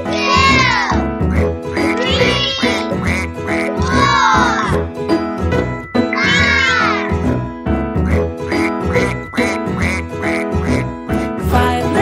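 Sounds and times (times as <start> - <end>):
bouncy children's song music: 0.0 - 12.0
cartoon duck quack: 0.3 - 4.4, 8.0 - 10.8.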